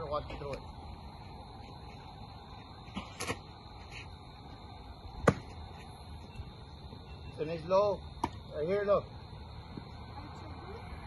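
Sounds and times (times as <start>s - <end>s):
soft scuff: 1.6s - 4.2s
baseball smacking into mitt: 5.2s - 5.6s.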